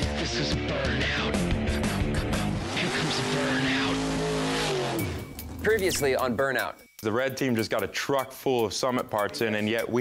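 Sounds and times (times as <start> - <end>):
car engine at high revs: 2.0 - 5.3.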